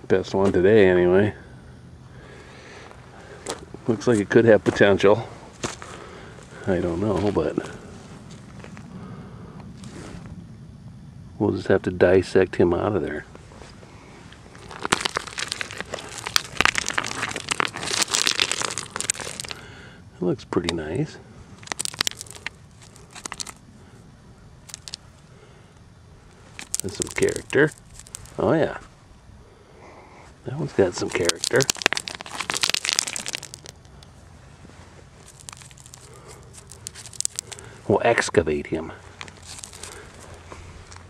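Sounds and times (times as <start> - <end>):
gravel clicking and crunching: 2.2 - 10.3, 13.1 - 19.8, 20.6 - 24.0, 24.6 - 29.0, 30.1 - 41.0.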